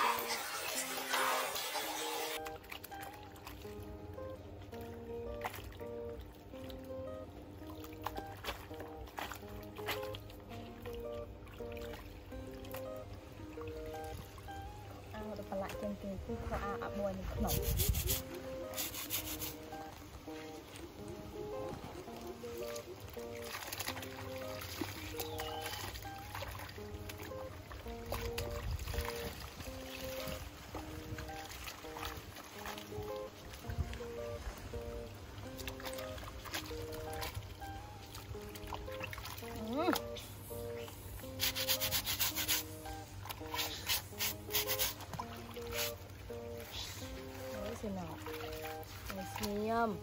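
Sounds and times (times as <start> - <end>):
wet cloth scrubbed in soapy water: 0.0 - 3.4, 15.0 - 20.6, 41.2 - 50.0
background music: 0.0 - 50.0
brush scrubbing wet cloth: 17.2 - 19.9, 41.3 - 46.0.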